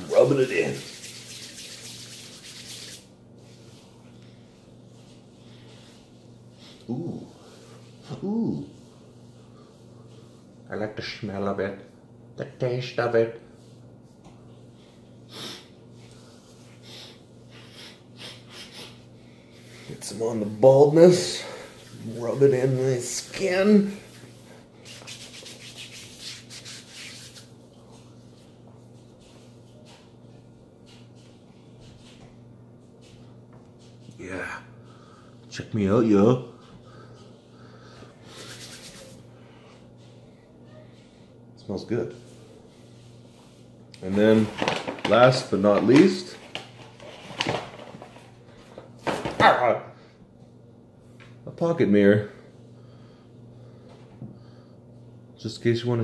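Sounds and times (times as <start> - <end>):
palms rubbing together: 0.0 - 3.8, 19.6 - 28.0, 38.3 - 39.2.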